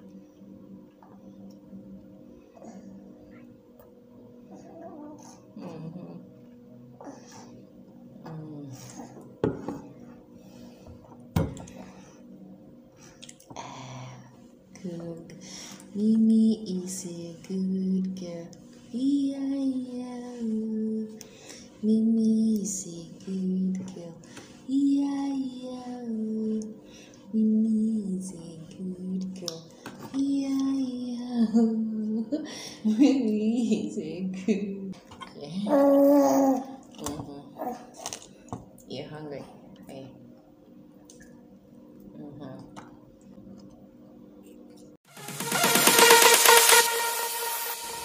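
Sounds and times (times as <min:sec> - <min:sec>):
woman humming a slow tune: 0:05.6 - 0:06.3.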